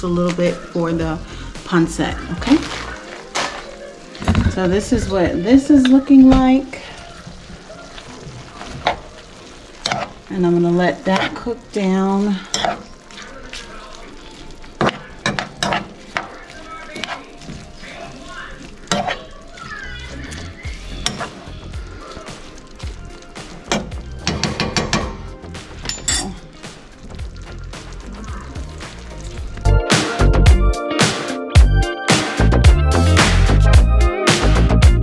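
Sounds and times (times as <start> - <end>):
vegetables sizzling: 0.0 - 31.4
metal spoon scraping skillet: 9.7 - 10.4, 12.3 - 13.3, 14.8 - 18.0, 18.8 - 19.3, 20.1 - 26.7
loud music with strong beat: 26.7 - 35.0.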